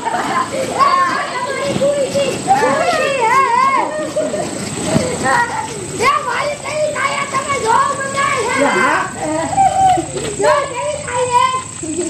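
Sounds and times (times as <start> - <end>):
people calling out excitedly: 0.0 - 12.0.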